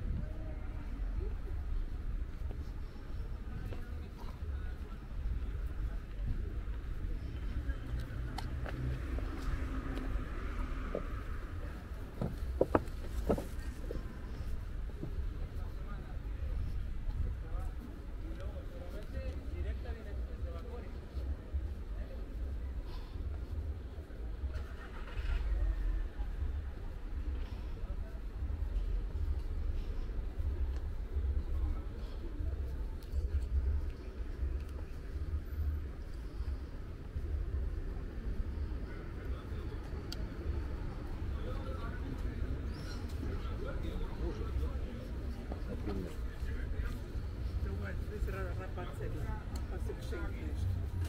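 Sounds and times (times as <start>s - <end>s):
faint distant voices: 0.0s - 51.0s
low street rumble: 0.0s - 51.0s.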